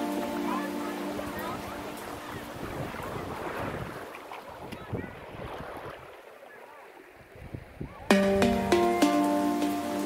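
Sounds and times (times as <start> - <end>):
small waves lapping on rocks: 0.1 - 7.7
wind buffeting microphone: 1.4 - 6.1, 7.2 - 8.1.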